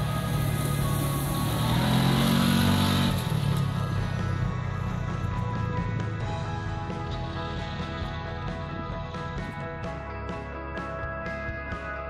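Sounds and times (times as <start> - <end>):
background music: 0.0 - 12.0
off-road vehicle engine driving: 0.0 - 12.0.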